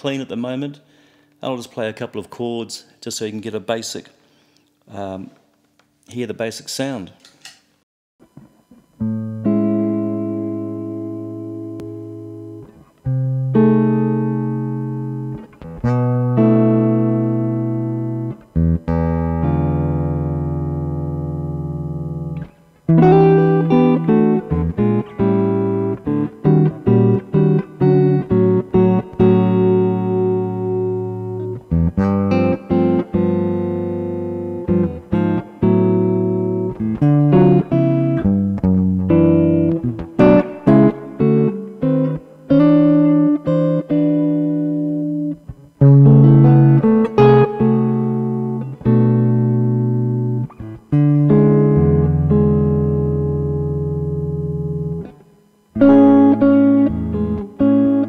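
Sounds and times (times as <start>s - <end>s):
clean electric guitar chords: 8.2s - 58.0s.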